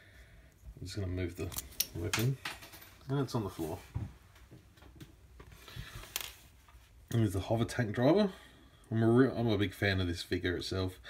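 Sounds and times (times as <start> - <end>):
plastic figure handling noise: 1.3 - 4.2, 4.8 - 7.0.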